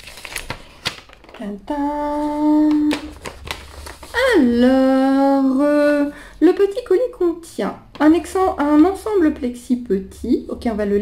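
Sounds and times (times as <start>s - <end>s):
paper crackling being unfolded: 0.0s - 4.4s.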